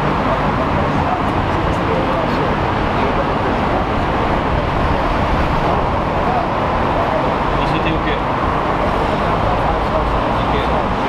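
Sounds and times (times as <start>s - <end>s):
highway traffic noise: 0.0s - 11.0s
voices talking: 0.0s - 11.0s.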